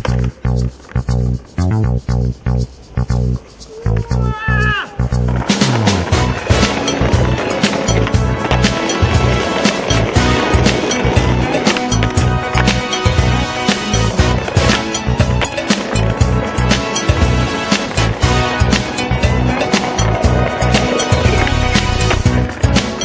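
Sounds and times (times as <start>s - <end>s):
skateboard clacks: 0.0s - 1.6s, 2.8s - 23.0s
skateboard wheels rolling on paving: 0.0s - 1.6s, 2.4s - 23.0s
music with steady beat: 5.3s - 23.0s.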